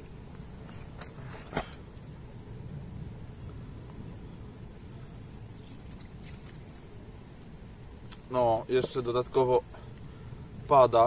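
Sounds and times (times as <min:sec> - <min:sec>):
steady low rumble: 0:00.0 - 0:11.0
water poured from a bucket: 0:05.6 - 0:06.8.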